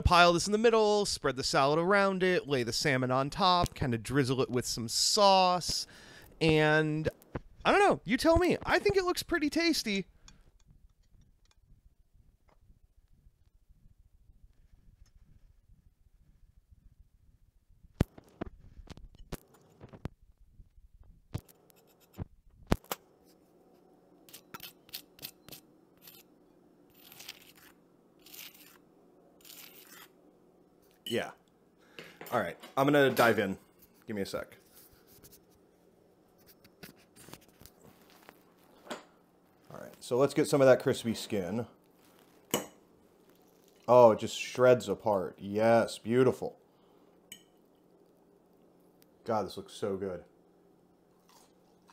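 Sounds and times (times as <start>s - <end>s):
metal fork clinking on bowl: 47.3s - 47.6s.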